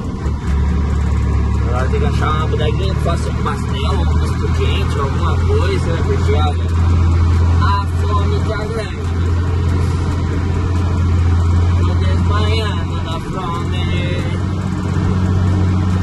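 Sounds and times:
diesel truck engine drone in cab: 0.0s - 16.0s.

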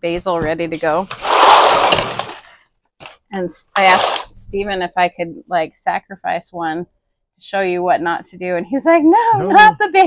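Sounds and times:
plastic seedling tray scraping: 0.8s - 3.2s, 3.8s - 4.5s.

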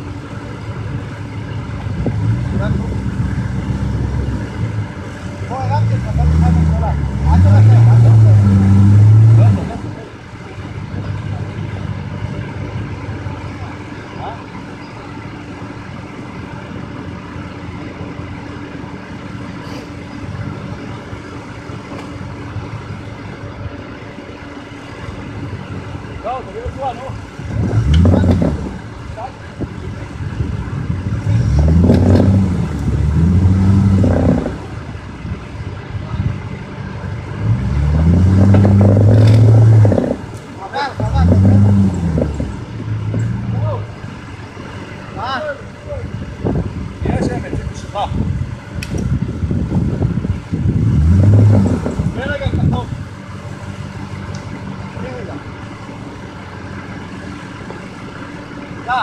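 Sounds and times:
off-road engine revving hard: 0.8s - 14.8s, 25.7s - 35.4s, 36.0s - 48.4s, 49.0s - 55.5s.

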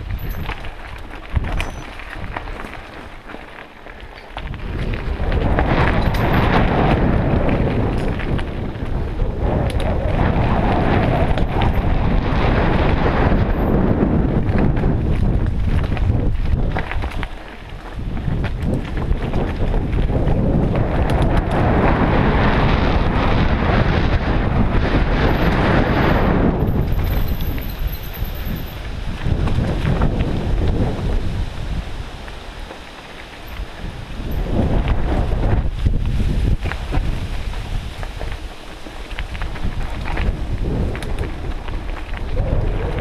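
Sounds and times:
bike tyre and trail rattle: 0.0s - 43.0s
wind buffeting microphone: 0.0s - 43.0s.

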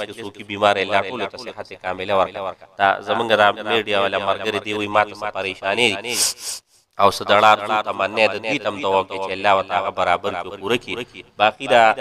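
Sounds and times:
man speaking into a microphone: 0.0s - 12.0s
short hiss: 6.1s - 6.9s.

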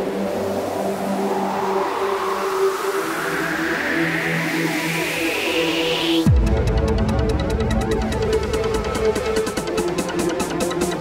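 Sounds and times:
sustained synth chords: 6.3s - 11.0s.

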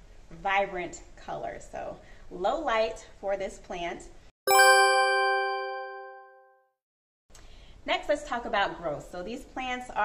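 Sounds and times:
chime sound effect: 4.5s - 6.8s.

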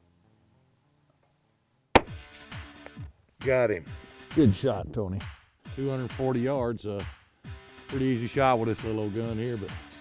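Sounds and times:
music: 0.0s - 10.0s
rifle shot: 2.0s - 2.4s.

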